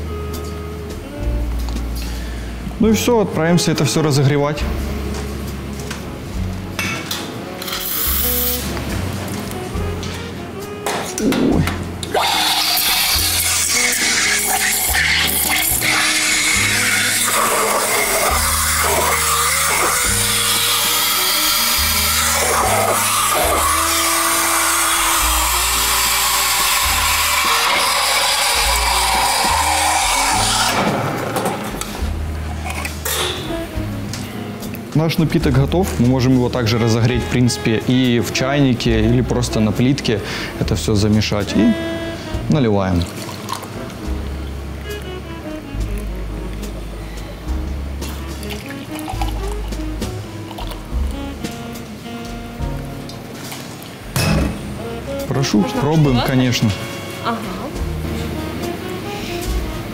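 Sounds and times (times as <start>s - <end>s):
background music with a beat: 0.0s - 2.1s, 30.7s - 36.5s, 43.7s - 55.3s, 56.8s - 59.9s
steam wand hissing: 7.7s - 8.7s, 12.1s - 31.1s.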